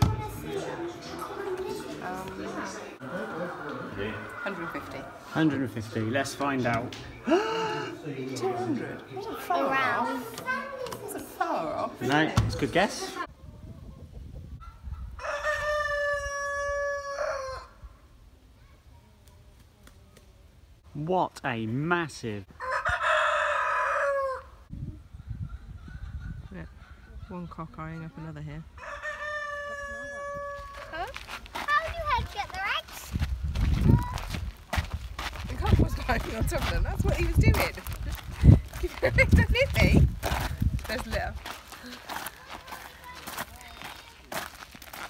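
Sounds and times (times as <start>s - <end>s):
rooster crowing: 15.2s - 17.8s, 22.6s - 24.6s, 28.8s - 31.0s.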